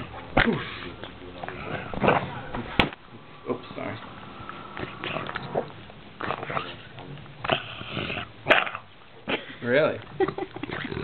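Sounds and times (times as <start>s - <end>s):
dog grunting and whining: 4.8s - 9.4s.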